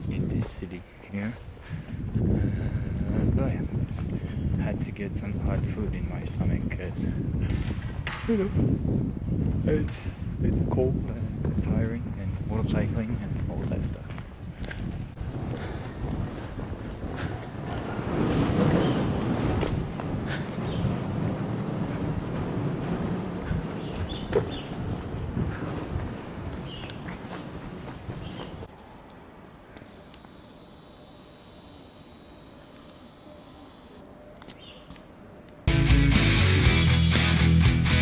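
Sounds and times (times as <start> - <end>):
wind buffeting microphone: 0.0 - 28.8
steady background hiss: 28.7 - 35.6.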